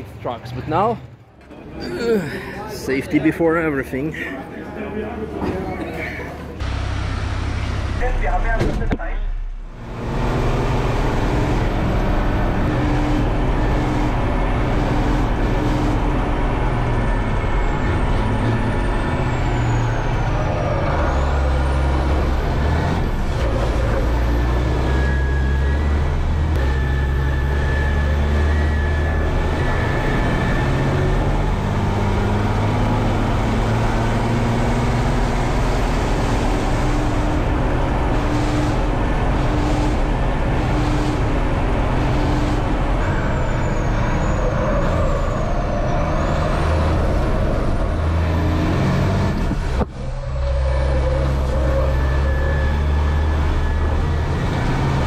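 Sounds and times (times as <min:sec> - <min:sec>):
road noise: 0:00.0 - 0:55.0
diesel engine running hard: 0:06.0 - 0:55.0.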